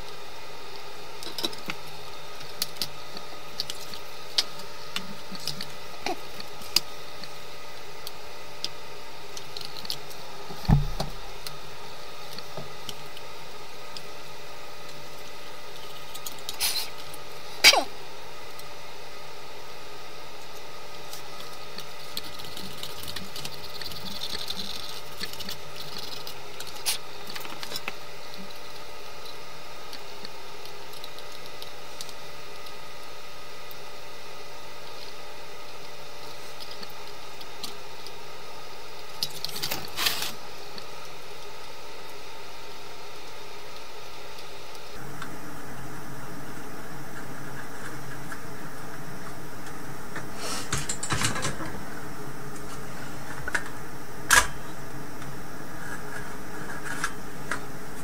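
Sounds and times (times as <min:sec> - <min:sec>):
workshop background hum: 0:00.0 - 0:58.0.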